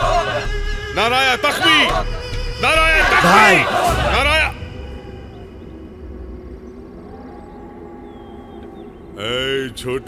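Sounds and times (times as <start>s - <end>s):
sustained film score chord: 0.0s - 10.0s.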